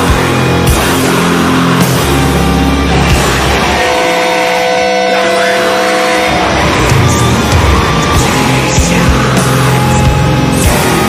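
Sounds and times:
sustained metal guitar notes: 0:00.0 - 0:11.0.

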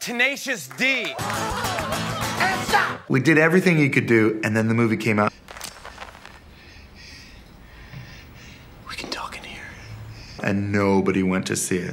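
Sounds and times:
faint whispered voice: 0:08.8 - 0:09.9.

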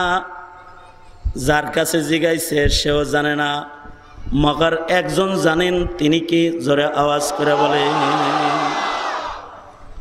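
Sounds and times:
man chanting over public address: 0:04.4 - 0:08.8.

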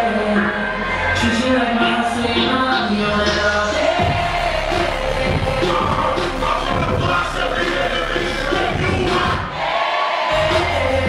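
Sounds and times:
crowd voices: 0:00.0 - 0:11.0
hip-hop music over pa: 0:00.0 - 0:11.0.

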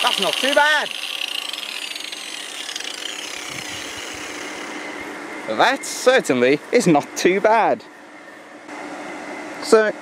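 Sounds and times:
angle grinder whirring: 0:00.0 - 0:05.5.

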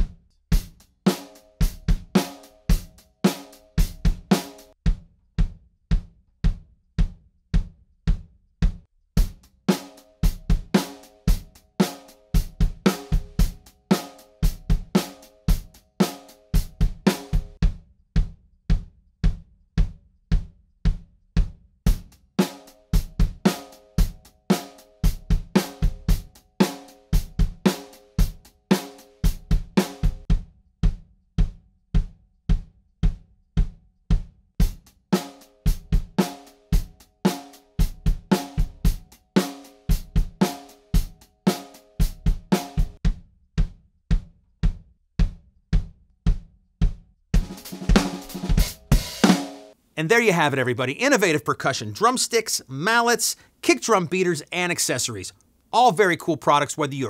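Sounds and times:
drum kit grooves: 0:00.0 - 0:57.0
bass drum kicks: 0:03.8 - 0:09.4, 0:16.6 - 0:22.1, 0:29.5 - 0:34.8, 0:42.3 - 0:49.1.

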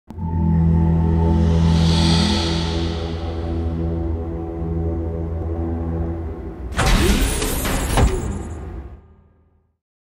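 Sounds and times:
low dark music drone: 0:00.1 - 0:08.0.

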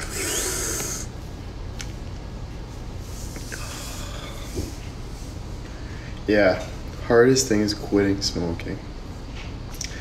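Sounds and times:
person sniffing: 0:00.0 - 0:01.1.

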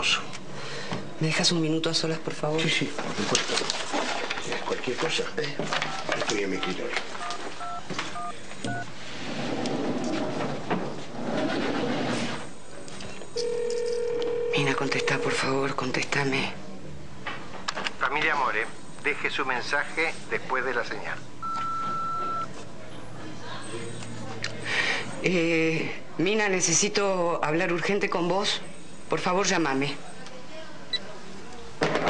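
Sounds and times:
low noisy hum: 0:00.0 - 0:32.0
telephone keypad beeps: 0:06.5 - 0:08.8, 0:21.4 - 0:22.5.

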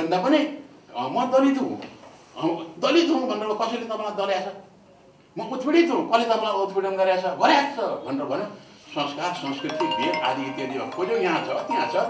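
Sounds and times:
two-tone chime: 0:09.5 - 0:12.0.

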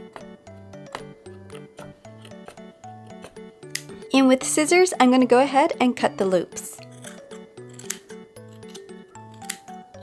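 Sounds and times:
scissors snipping yarn: 0:00.8 - 0:04.0, 0:06.8 - 0:09.7.

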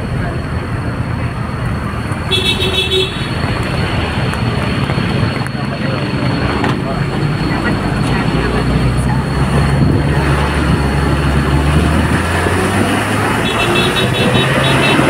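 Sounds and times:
vehicle engine and road rumble: 0:00.0 - 0:15.0.

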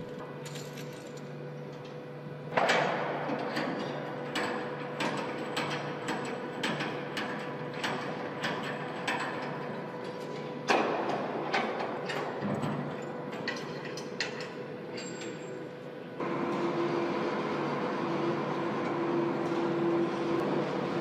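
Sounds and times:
steady machine hum: 0:00.0 - 0:21.0.

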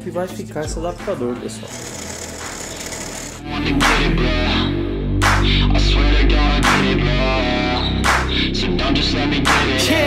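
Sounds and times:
drill press cutting metal: 0:01.7 - 0:03.4.

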